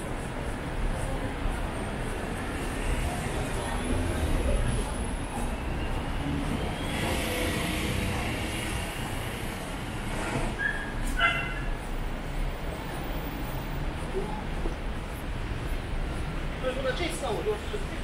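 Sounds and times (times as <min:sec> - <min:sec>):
traffic hum: 0:00.0 - 0:18.0.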